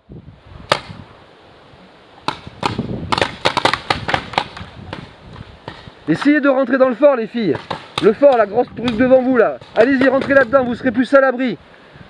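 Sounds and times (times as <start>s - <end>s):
paintball markers popping: 2.3s - 5.1s.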